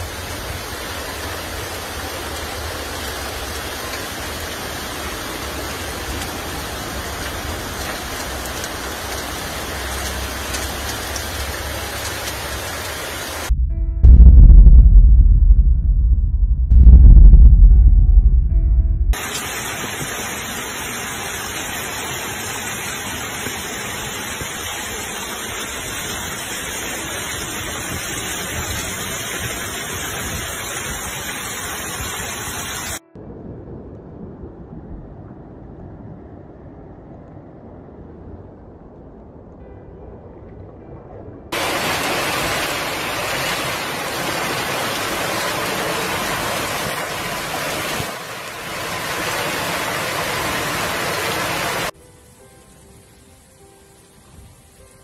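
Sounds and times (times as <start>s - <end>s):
floodwater rushing: 0.0s - 13.5s, 19.1s - 33.0s, 41.5s - 55.0s.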